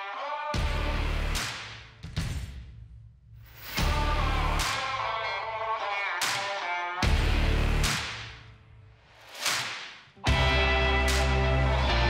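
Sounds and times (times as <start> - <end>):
guitar background music: 3.8 - 7.9, 10.2 - 12.0.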